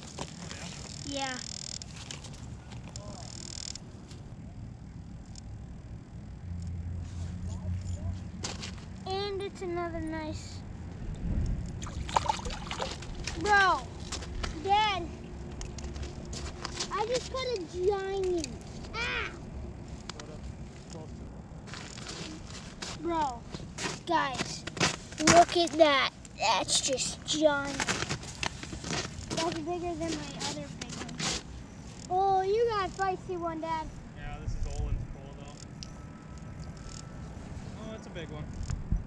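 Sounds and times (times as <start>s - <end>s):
wind rumbling on microphone: 11.0s - 13.4s, 34.0s - 35.5s, 38.3s - 39.0s.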